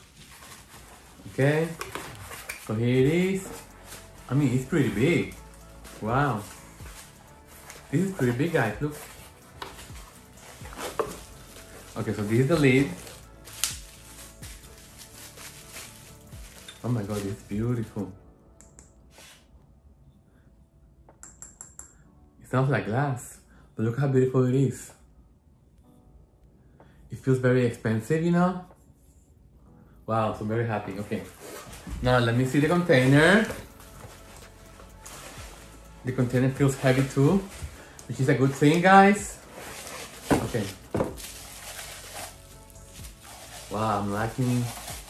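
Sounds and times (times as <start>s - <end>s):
cardboard and bubble wrap rustling: 0.0s - 18.0s, 30.9s - 45.0s.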